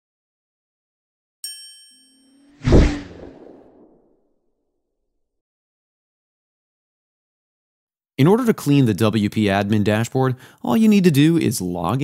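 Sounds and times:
deep boom: 0:02.6 - 0:04.0
whoosh: 0:02.6 - 0:04.1.

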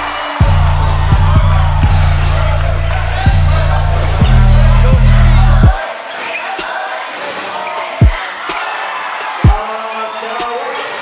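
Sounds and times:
crowd murmur: 0:00.0 - 0:11.0.

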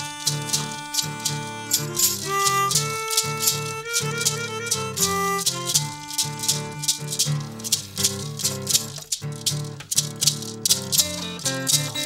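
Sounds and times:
harmonica note: 0:00.0 - 0:08.0
hand shaker beat: 0:00.0 - 0:12.0
strummed acoustic guitar: 0:00.0 - 0:12.0.

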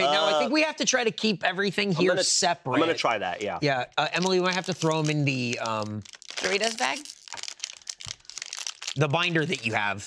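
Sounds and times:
chip bag crinkling: 0:04.0 - 0:10.0.

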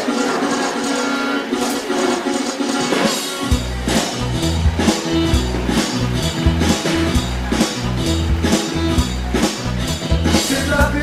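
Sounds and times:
drum beat: 0:01.5 - 0:11.0
repeating mid-range melody: 0:02.2 - 0:10.4.

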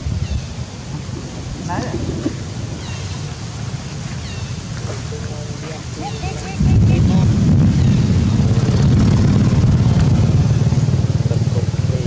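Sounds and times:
engine running low rumble: 0:00.0 - 0:12.0.

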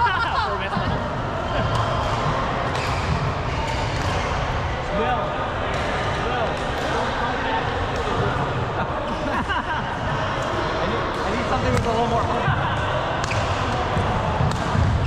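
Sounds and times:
people talking at once: 0:00.0 - 0:02.6.

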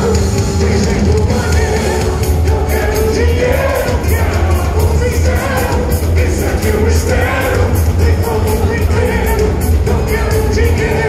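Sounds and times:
drums and cymbals beat: 0:00.0 - 0:11.0
heavy metal band playing live: 0:00.0 - 0:11.0
singer vocals: 0:00.0 - 0:11.0.

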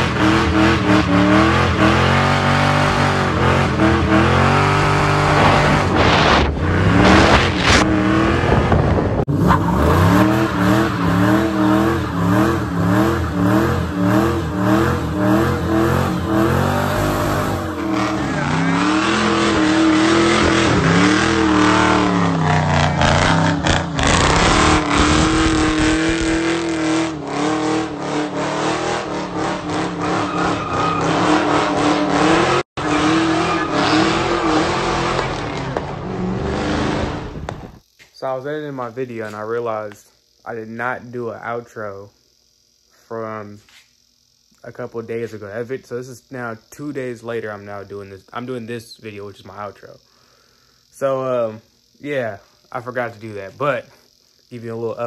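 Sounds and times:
car engine revving: 0:00.0 - 0:37.8
tyre noise: 0:04.8 - 0:12.7.

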